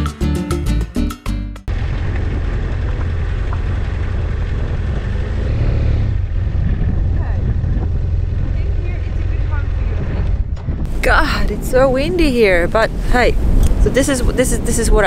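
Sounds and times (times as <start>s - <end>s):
motorcycle engine running: 1.7s - 11.3s
wind buffeting microphone: 1.7s - 15.0s.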